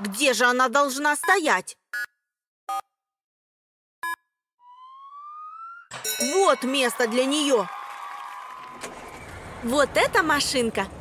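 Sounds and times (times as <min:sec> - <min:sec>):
short electronic beeps: 0:01.2 - 0:02.9.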